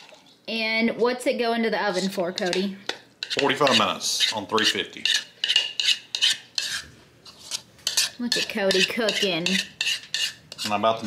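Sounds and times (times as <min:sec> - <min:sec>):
utensil scraping batter from bowl: 0:01.8 - 0:11.0.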